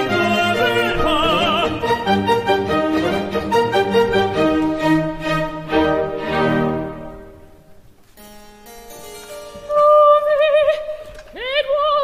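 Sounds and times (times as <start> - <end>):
harpsichord chords: 0.0 - 10.6.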